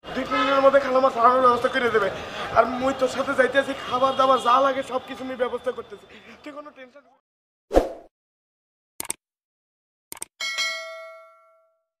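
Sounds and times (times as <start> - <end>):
quick clicks: 9.0 - 9.2, 10.1 - 10.3
bright bell ding: 10.4 - 12.0.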